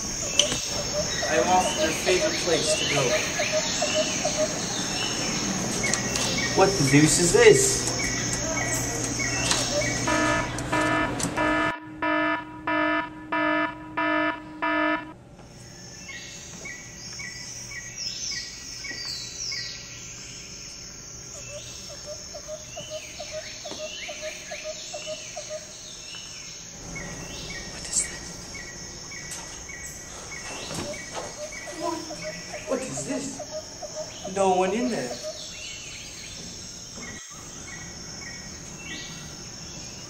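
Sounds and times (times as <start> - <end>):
crickets chirping: 0.0 - 11.6, 13.8 - 40.0
birds calling: 0.0 - 11.7, 15.5 - 40.0
pulsing electronic tone: 9.6 - 15.1.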